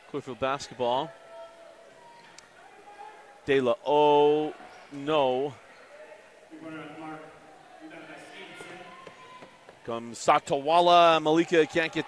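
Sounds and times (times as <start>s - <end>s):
faint crowd voices: 0.0s - 12.0s
players running on court: 7.0s - 12.0s.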